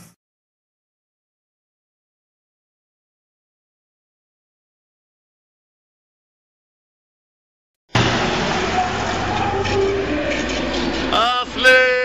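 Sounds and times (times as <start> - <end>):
tanker truck driving past: 7.9 - 11.6.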